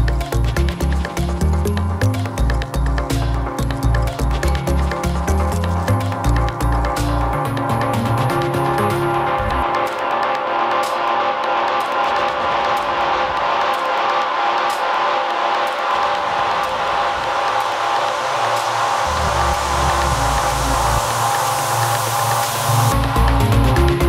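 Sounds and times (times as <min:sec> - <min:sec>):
deep bass notes: 0:00.0 - 0:09.7, 0:19.0 - 0:21.9, 0:22.7 - 0:24.0
synth chords: 0:00.0 - 0:24.0
hiss: 0:14.8 - 0:23.5.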